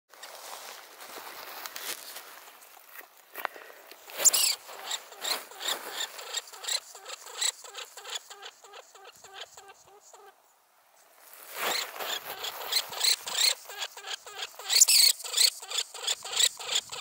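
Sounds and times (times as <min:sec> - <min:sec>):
lemming squeaking in alarm: 0:11.7 - 0:17.0.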